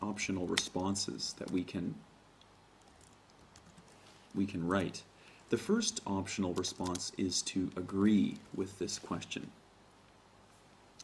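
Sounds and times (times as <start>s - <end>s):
typing on computer keyboard: 2.8s - 3.9s, 6.6s - 7.0s.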